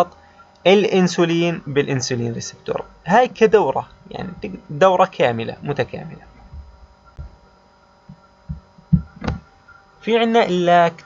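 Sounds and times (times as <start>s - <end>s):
faint steady hum: 0.0s - 11.0s
soft low thumps: 6.2s - 9.5s.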